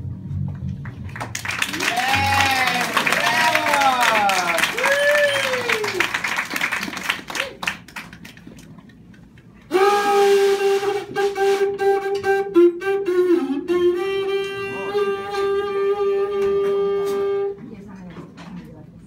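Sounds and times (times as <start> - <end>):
hand-held wind instrument melody: 9.7 - 17.7.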